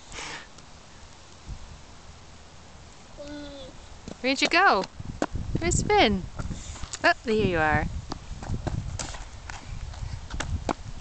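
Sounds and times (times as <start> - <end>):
child's shoes tapping on concrete: 4.0 - 5.4, 8.0 - 11.0.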